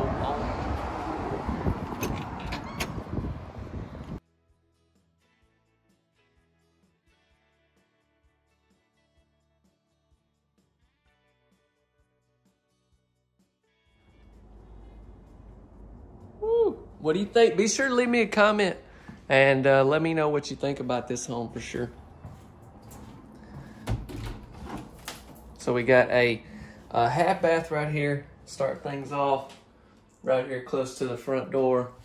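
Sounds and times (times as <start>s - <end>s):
wind on microphone: 0.0s - 4.2s
door handle and latch clicks: 1.9s - 3.0s
low room rumble: 14.1s - 17.6s
vocal exclamation: 16.4s - 16.9s.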